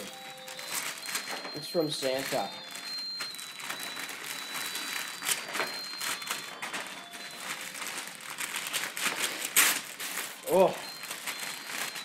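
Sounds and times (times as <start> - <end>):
wrapping paper tearing and crinkling: 0.0 - 12.0.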